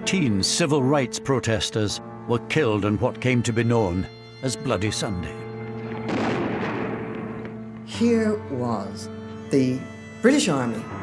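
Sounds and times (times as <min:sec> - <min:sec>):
background music drone: 0:00.0 - 0:11.0.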